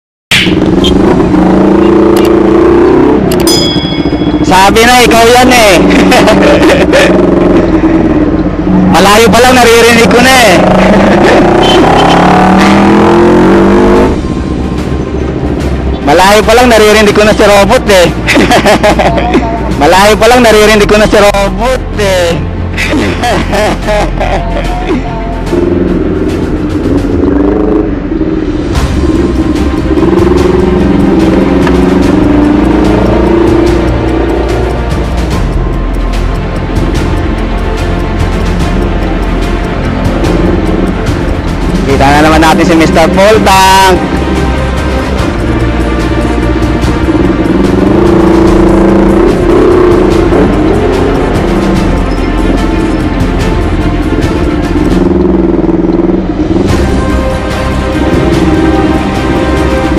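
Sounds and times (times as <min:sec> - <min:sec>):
motorcycle engine running: 0:00.3 - 0:18.3, 0:24.6 - 0:59.9
background music: 0:00.3 - 0:59.9.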